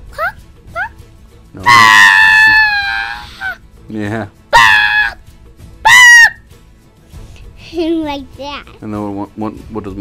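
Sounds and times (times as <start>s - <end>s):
cartoon rooster screaming: 1.6s - 3.6s, 4.5s - 5.2s, 5.8s - 6.4s.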